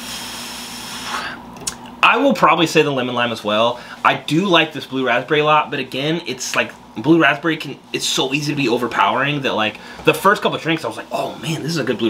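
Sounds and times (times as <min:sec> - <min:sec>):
man blowing out breath: 0:00.0 - 0:01.5.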